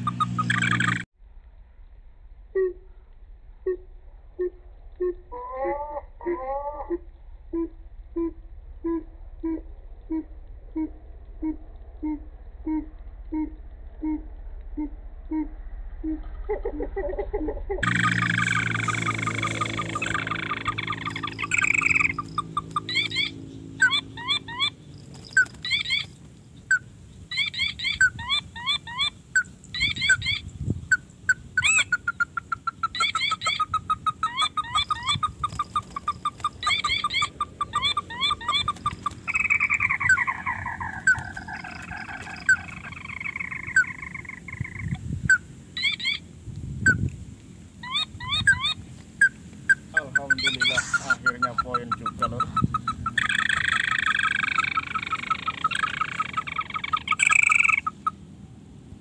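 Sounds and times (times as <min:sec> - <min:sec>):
bird rapid trill: 0:00.0 - 0:01.1, 0:17.8 - 0:46.2, 0:47.8 - 0:58.2
crakes chirping: 0:00.0 - 0:01.1, 0:17.8 - 0:47.1, 0:47.8 - 0:58.2
bird falling notes: 0:17.8 - 0:26.8.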